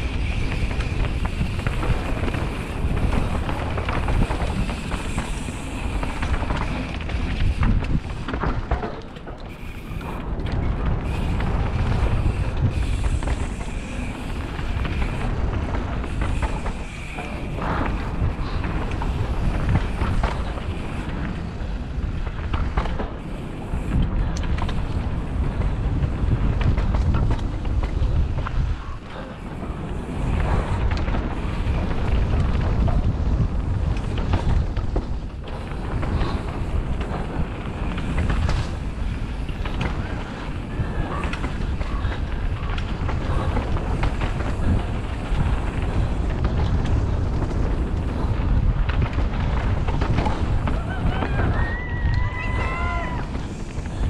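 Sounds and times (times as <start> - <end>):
bike tyres rumbling on dirt: 0.0 - 54.0
wind buffeting microphone: 0.0 - 54.0.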